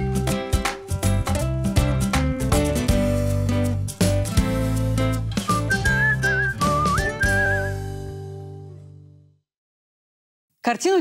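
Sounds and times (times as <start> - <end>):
bass and chords: 0.0 - 9.2
whistled jingle melody: 5.4 - 8.1.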